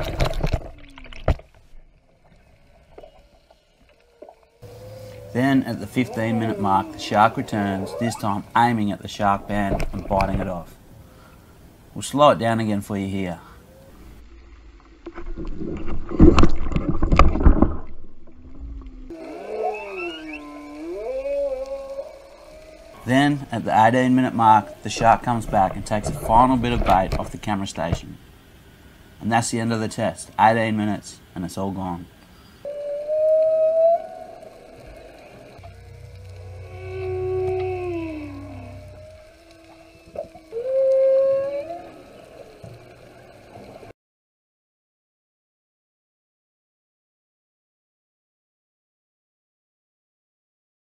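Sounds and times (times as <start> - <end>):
underwater knocks and crunching: 0.0 - 3.2, 9.4 - 10.7, 15.1 - 18.8, 25.0 - 28.1
whale-song-like calls: 3.0 - 8.8, 18.8 - 24.9, 32.6 - 43.9
low moaning gliding tone: 18.3 - 23.5, 32.7 - 43.9
low drone: 32.7 - 43.4.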